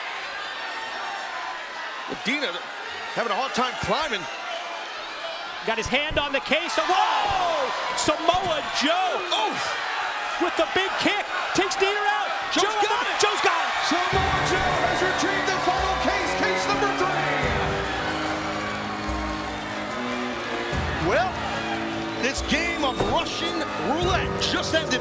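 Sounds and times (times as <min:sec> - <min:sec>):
crowd cheering and shouting: 0:00.0 - 0:25.0.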